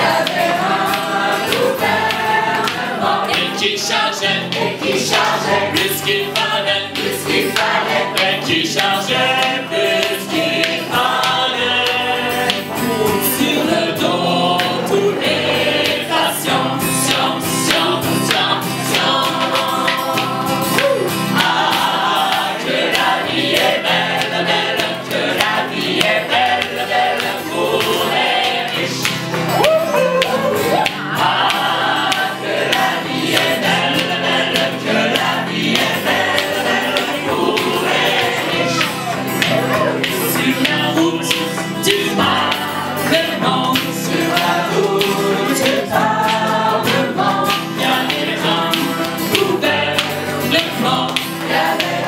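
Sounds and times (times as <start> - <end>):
hand claps: 0.0 - 52.0
mixed choir singing: 0.0 - 52.0.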